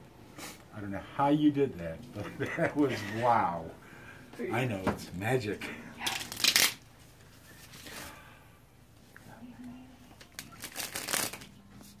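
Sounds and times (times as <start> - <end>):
playing cards being shuffled: 6.1 - 6.8, 10.2 - 12.0.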